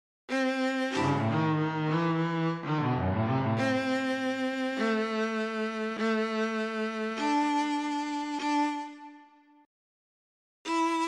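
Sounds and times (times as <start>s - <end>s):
violin bowing a low note: 0.3s - 9.5s.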